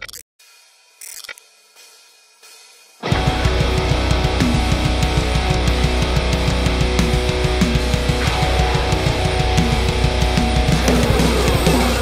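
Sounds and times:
metalcore band playing: 0:02.5 - 0:12.0.

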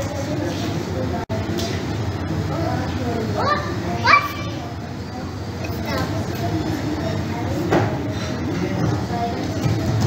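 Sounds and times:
children's voices murmuring: 0:00.0 - 0:09.8.

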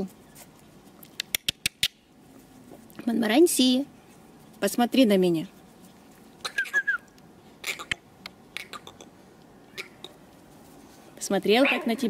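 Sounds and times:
puppy high chirps: 0:06.4 - 0:08.0, 0:09.7 - 0:10.2.

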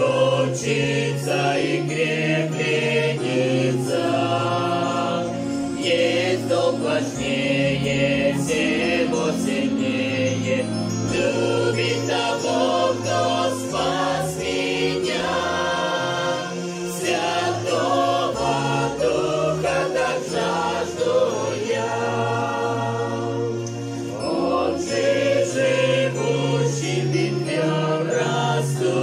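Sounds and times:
electronic keyboard: 0:00.0 - 0:29.0
group singing a hymn: 0:00.0 - 0:29.0.

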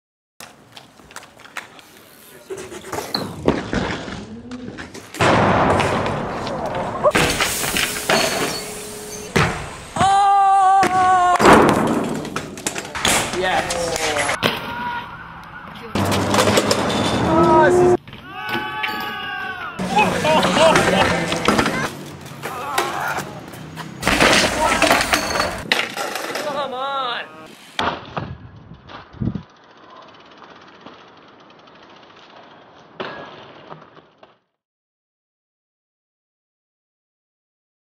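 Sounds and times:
bikes crashing on pavement: 0:00.5 - 0:34.6
clattering knocks and scrapes: 0:16.0 - 0:18.1, 0:23.5 - 0:26.6
voices: 0:17.2 - 0:25.6, 0:26.3 - 0:27.6.

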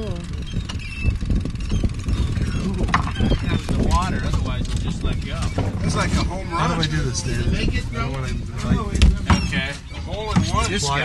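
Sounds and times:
boat engine rumble: 0:00.0 - 0:11.0.

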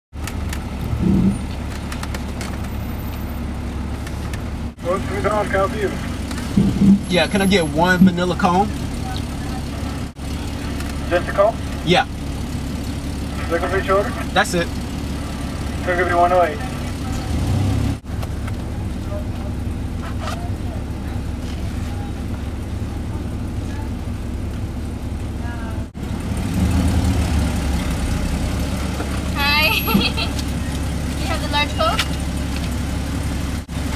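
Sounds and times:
vehicle engine idling: 0:00.1 - 0:33.9.

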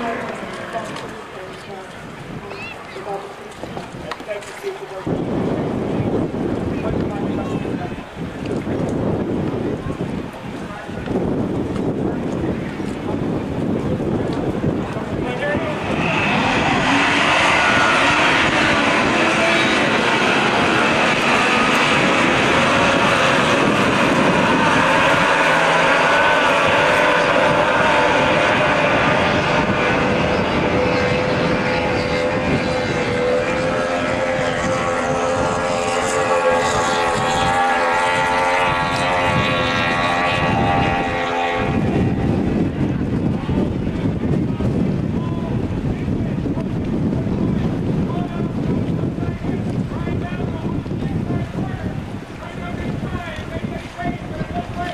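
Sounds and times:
outboard engines whining at full throttle: 0:00.0 - 0:54.9
wind on microphone: 0:00.0 - 0:54.9.

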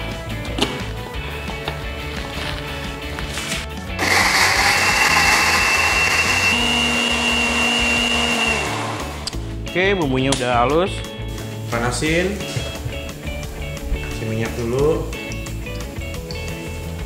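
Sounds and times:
blender whining: 0:04.0 - 0:09.3.

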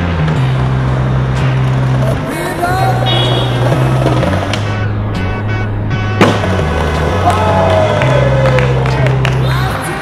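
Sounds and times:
music with heavy bass: 0:00.0 - 0:10.0
skateboard wheels on stone paving: 0:00.8 - 0:04.7, 0:06.2 - 0:08.5
skateboard clack: 0:06.2 - 0:09.5.

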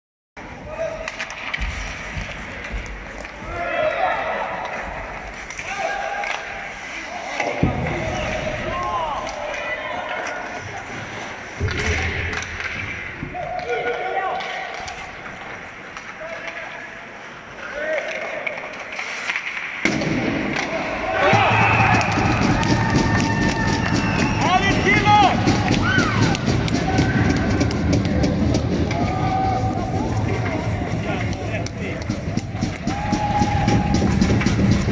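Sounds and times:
skates scraping on ice: 0:00.4 - 0:19.8
sticks and puck knocking: 0:21.2 - 0:29.9, 0:30.8 - 0:34.9.

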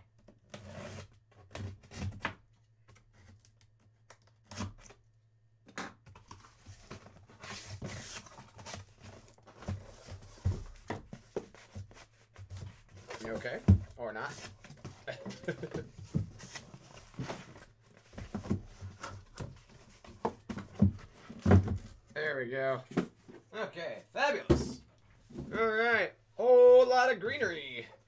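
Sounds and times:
cardboard flaps rustling and scraping: 0:06.2 - 0:22.1.

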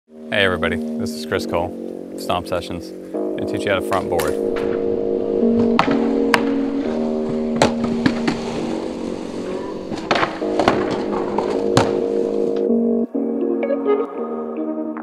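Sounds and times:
background music: 0:00.1 - 0:15.0
skateboard wheels rolling on concrete: 0:03.2 - 0:13.1
skateboard cracks and landings: 0:05.6 - 0:06.7, 0:07.3 - 0:12.3.

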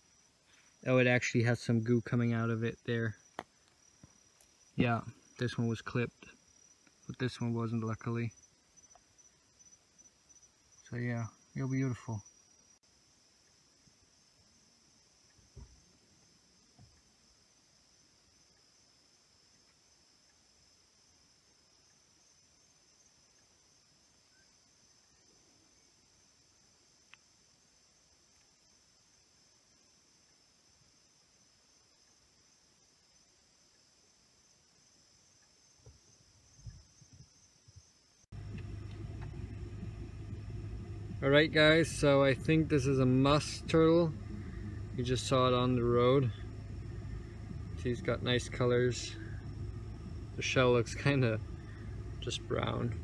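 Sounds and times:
night insects chirring: 0:00.0 - 0:53.0
low hum: 0:38.3 - 0:53.0.

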